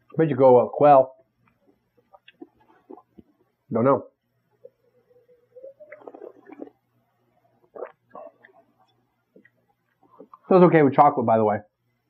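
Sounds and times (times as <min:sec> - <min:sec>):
faint sipping and swallowing: 0:01.5 - 0:03.6, 0:04.6 - 0:10.5.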